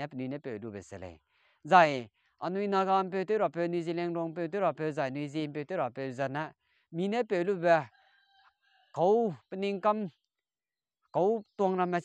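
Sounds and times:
man speaking: 0:00.0 - 0:07.9, 0:09.0 - 0:10.1, 0:11.2 - 0:12.0
distant rooster crowing: 0:07.8 - 0:09.0.

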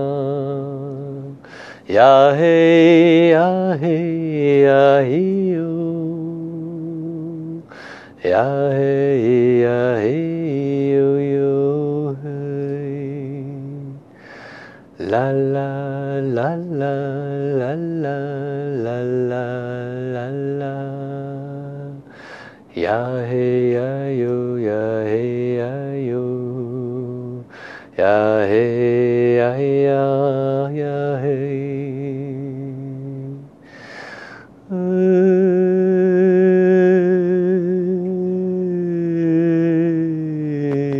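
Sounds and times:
man chanting: 0:00.0 - 0:14.0, 0:15.0 - 0:22.1, 0:22.7 - 0:33.5, 0:34.7 - 0:40.9
quick breath: 0:01.4 - 0:01.9, 0:07.7 - 0:08.2, 0:14.1 - 0:14.9, 0:22.1 - 0:22.7, 0:27.5 - 0:28.0, 0:33.6 - 0:34.6.

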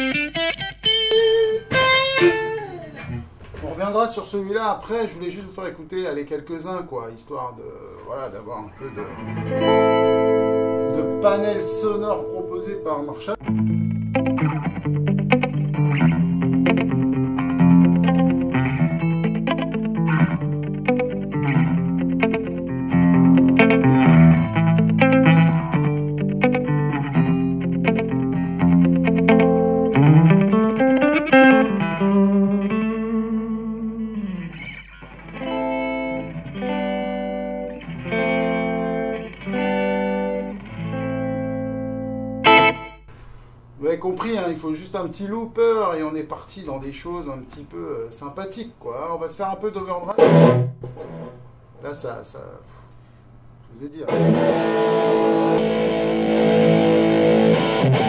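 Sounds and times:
electric guitar chords: 0:00.0 - 0:03.5, 0:08.7 - 0:43.4, 0:50.1 - 0:51.4, 0:54.1 - 0:58.0.

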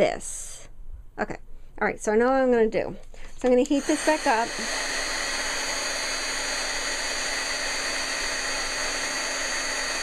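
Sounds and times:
heat gun blowing with whine: 0:03.4 - 0:10.0.

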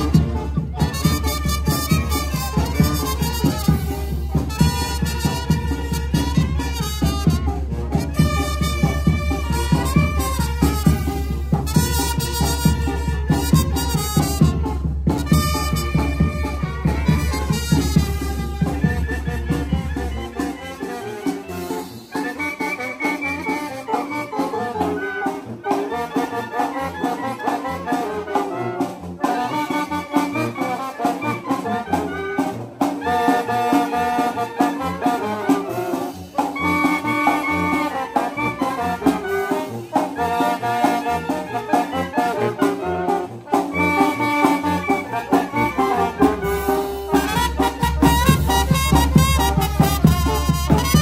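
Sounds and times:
drum kit with cymbals: 0:00.0 - 0:22.4, 0:32.4 - 0:51.0
brass band playing: 0:00.0 - 0:51.0.

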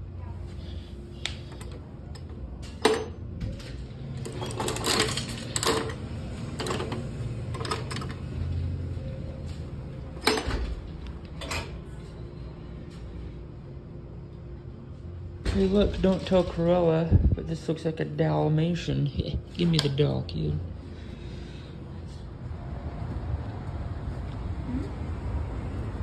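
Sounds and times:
vending machine crank clicking: 0:01.5 - 0:08.2.

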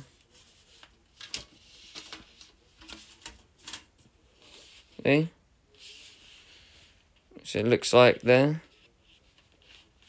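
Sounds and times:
soft rubbing and rustling: 0:00.0 - 0:10.0.

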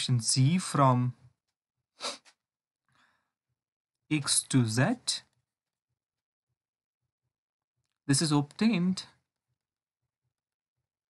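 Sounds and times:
man breathing: 0:02.9 - 0:03.4.

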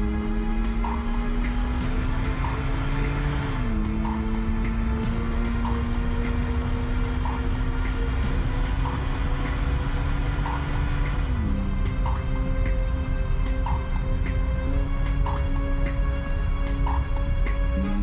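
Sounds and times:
low synth drone: 0:00.0 - 0:18.0
ticking beat: 0:00.0 - 0:18.0.

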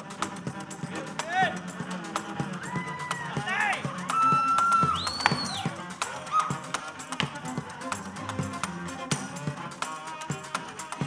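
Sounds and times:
bowed strings with swooping notes: 0:00.0 - 0:10.4
sharp percussive taps: 0:03.8 - 0:09.2
bowed upright bass and cello: 0:04.0 - 0:11.0.

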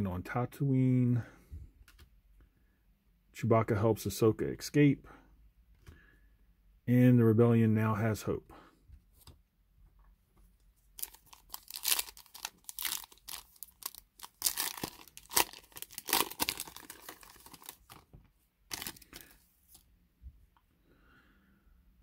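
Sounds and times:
foil wrapper tearing and crinkling: 0:11.0 - 0:18.0, 0:18.7 - 0:19.4.

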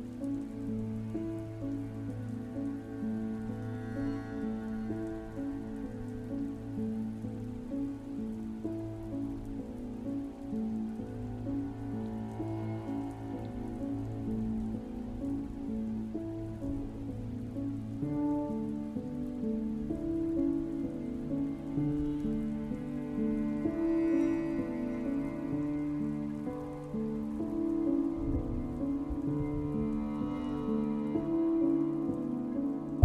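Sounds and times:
soft piano and harp music: 0:00.0 - 0:33.0
steady rain falling: 0:00.0 - 0:33.0.

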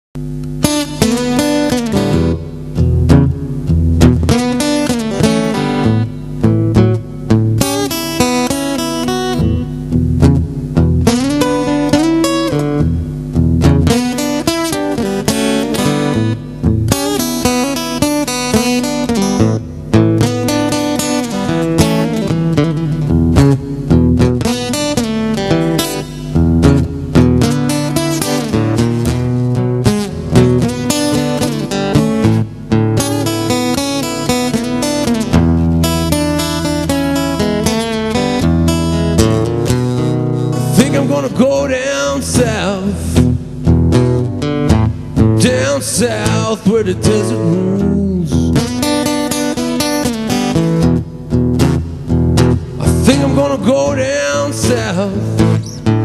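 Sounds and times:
solo acoustic blues guitar: 0:00.2 - 0:56.0.

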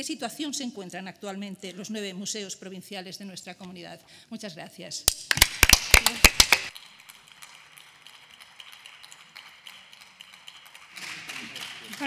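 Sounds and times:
scattered applause taps: 0:05.3 - 0:12.0.

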